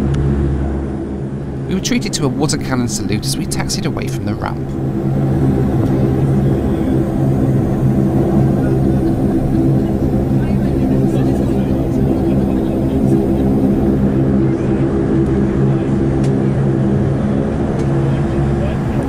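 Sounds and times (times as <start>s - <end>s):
turboprop engines droning: 0.0s - 19.0s.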